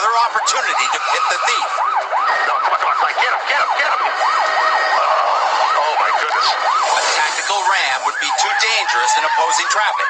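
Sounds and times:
police siren yelping: 0:00.0 - 0:10.0.

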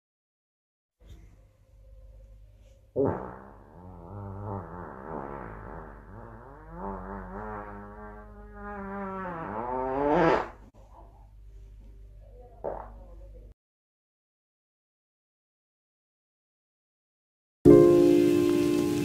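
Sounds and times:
long fart: 0:03.0 - 0:10.7.

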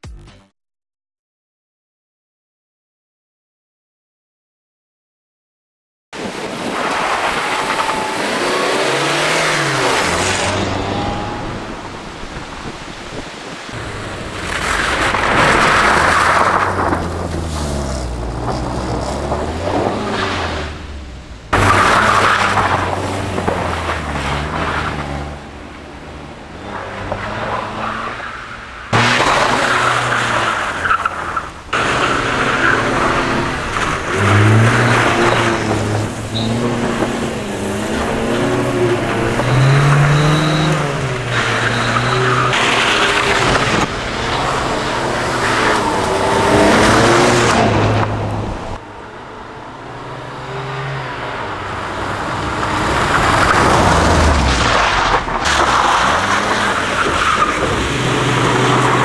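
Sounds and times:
car engine revving hard: 0:06.2 - 0:12.9, 0:13.7 - 0:25.6, 0:28.9 - 0:48.8, 0:50.0 - 0:59.0
tyres skidding on gravel: 0:06.2 - 0:25.6, 0:26.4 - 0:48.8, 0:51.9 - 0:59.0.

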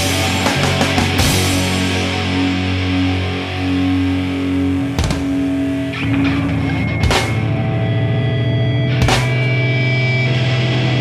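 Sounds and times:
distorted rock chords: 0:00.0 - 0:11.0.

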